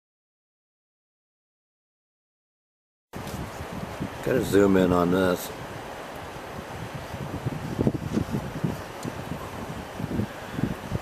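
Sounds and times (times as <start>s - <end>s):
car road and wind noise: 3.2s - 11.0s
wind buffeting microphone: 3.2s - 11.0s.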